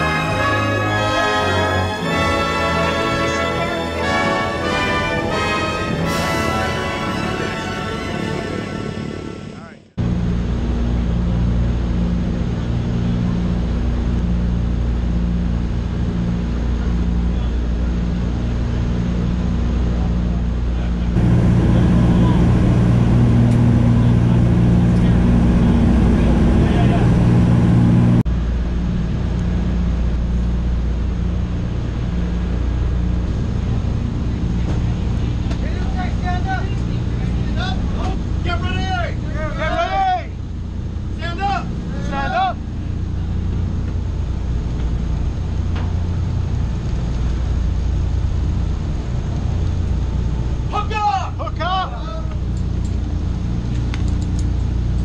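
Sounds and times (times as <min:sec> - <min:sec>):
aircraft piston engines droning: 0:00.0 - 0:55.0.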